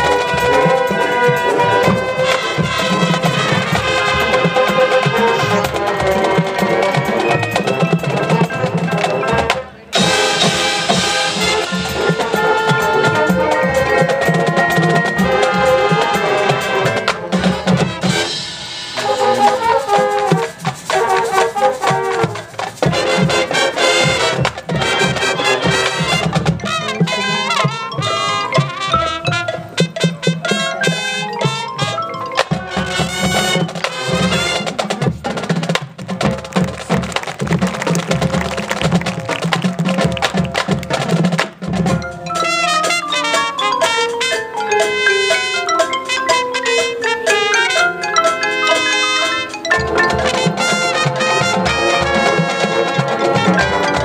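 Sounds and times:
brass chords: 0.0 - 54.0
drumline percussion: 0.0 - 54.0.

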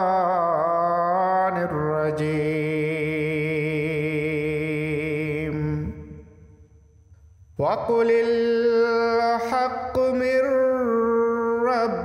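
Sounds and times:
chanted vocal music: 0.0 - 6.7, 7.6 - 12.0.

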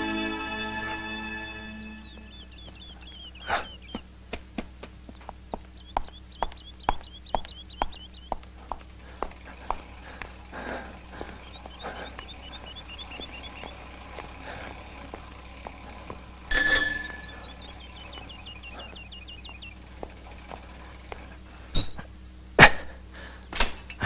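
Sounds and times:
bicycle bell ringing: 16.5 - 17.5.

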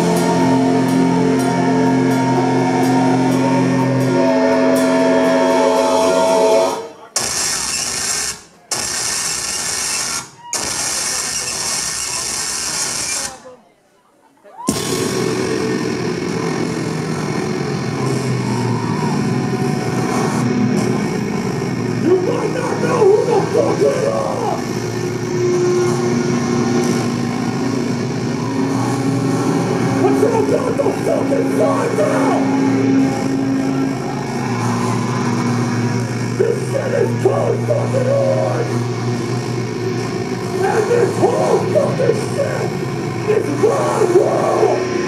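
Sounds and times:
distorted guitar chord: 0.0 - 7.0, 14.7 - 45.0
harsh noise blasts: 0.0 - 13.6, 14.7 - 45.0.

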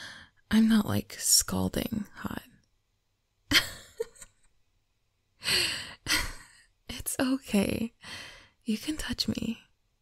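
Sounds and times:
soft laugh: 3.5 - 4.5.

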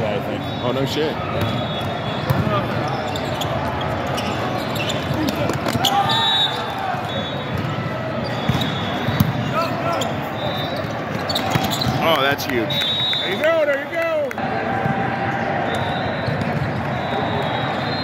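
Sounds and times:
hubbub of many voices: 0.0 - 18.0
volleyballs being hit and bouncing: 1.4 - 2.9, 3.5 - 6.1, 7.5 - 9.7, 11.0 - 12.6, 15.8 - 17.0.

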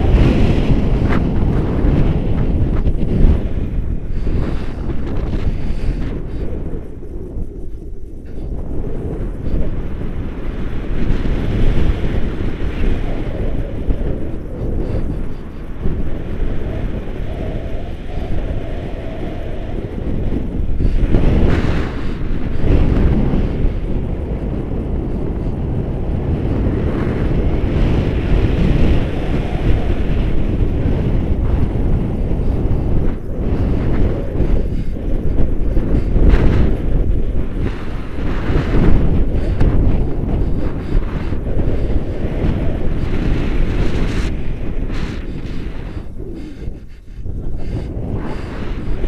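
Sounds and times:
wind rushing over microphone: 0.0 - 49.0.

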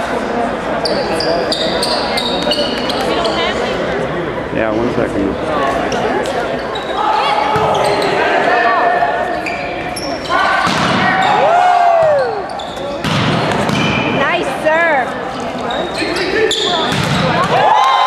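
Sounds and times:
sneakers squeaking: 0.8 - 3.8, 5.8 - 17.6
players shouting: 10.2 - 12.8
ball struck and bouncing: 10.6 - 11.1, 13.0 - 14.0, 16.9 - 17.6.

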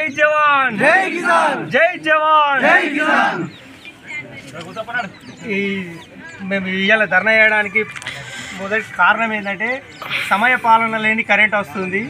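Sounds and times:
man calling out slogan: 0.0 - 3.5.

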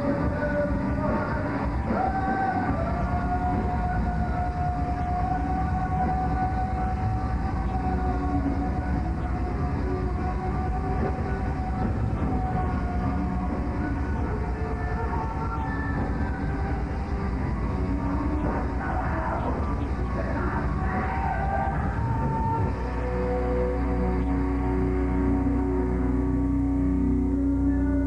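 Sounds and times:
metal band playing live: 0.0 - 26.3.

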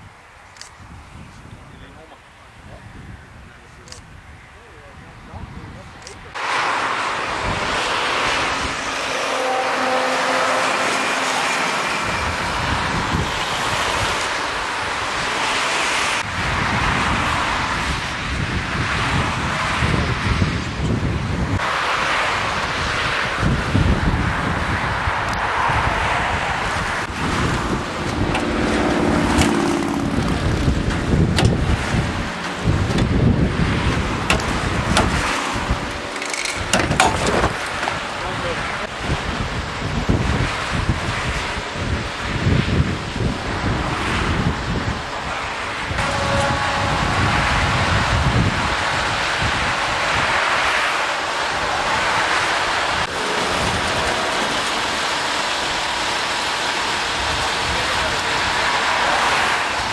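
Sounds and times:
wind gusting on microphone: 0.0 - 59.9
cars passing: 5.6 - 59.9.

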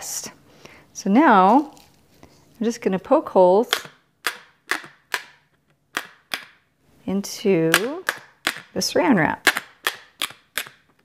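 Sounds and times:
plastic wrap popping: 9.4 - 11.0.

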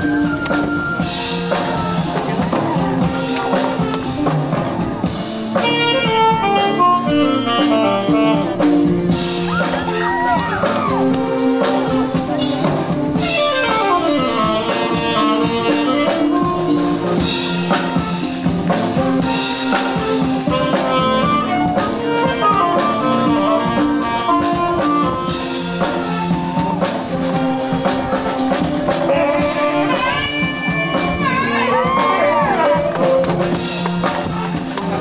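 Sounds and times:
clarinets and saxophones: 0.0 - 34.9
drum kit beat: 0.0 - 35.0.

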